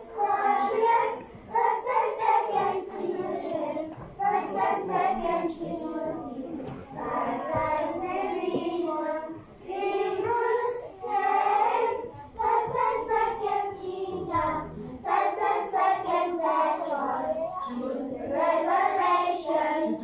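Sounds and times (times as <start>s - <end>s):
children singing: 0.0s - 20.0s.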